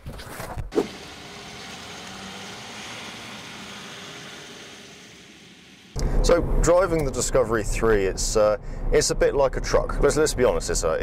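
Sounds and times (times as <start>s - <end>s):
diesel engine running: 0.8s - 7.2s.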